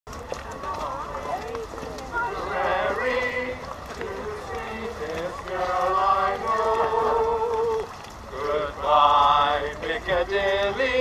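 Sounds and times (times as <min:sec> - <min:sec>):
low steady rumble: 0:00.1 - 0:11.0
people talking over one another: 0:00.1 - 0:11.0.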